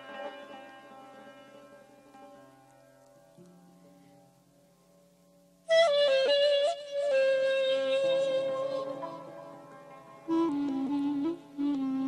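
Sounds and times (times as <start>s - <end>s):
ney flute melody: 5.6s - 9.6s, 10.2s - 12.0s.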